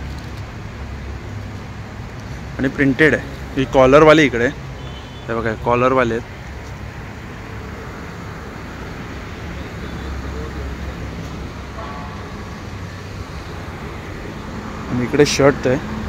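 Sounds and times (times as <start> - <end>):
distant voices: 1.0 - 16.0
crowd murmur: 7.6 - 14.6.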